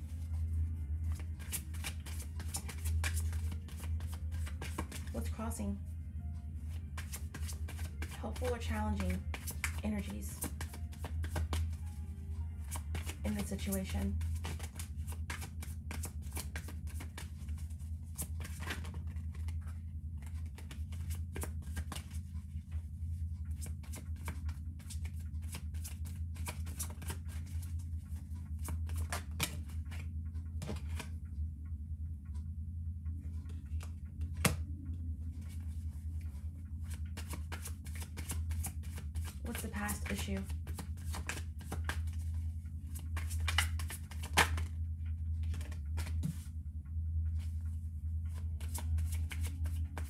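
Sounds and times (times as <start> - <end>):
steady low hum: 0.0 - 50.0
cards being shuffled: 0.1 - 5.3, 6.7 - 12.0, 12.6 - 22.4, 23.5 - 31.2, 35.4 - 44.8, 45.4 - 46.5, 48.3 - 50.0.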